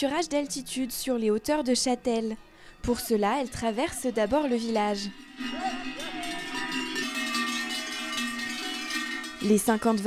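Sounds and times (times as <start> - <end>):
cowbells clanging: 2.6 - 10.0.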